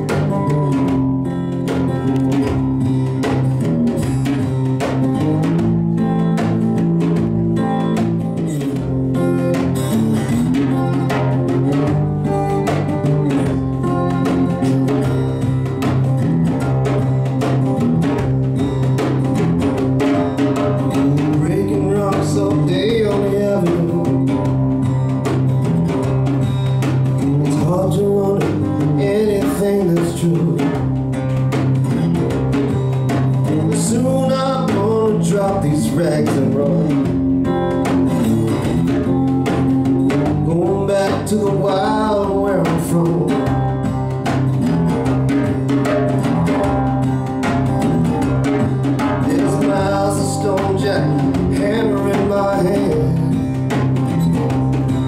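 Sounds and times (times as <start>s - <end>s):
hand drum beat: 0.0s - 55.0s
lap slide guitar: 0.0s - 55.0s.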